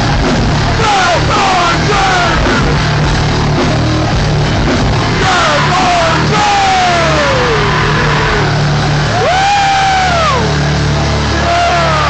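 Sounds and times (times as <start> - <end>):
long sliding pitched notes: 0.0 - 12.0
punk band playing loud: 0.0 - 12.0.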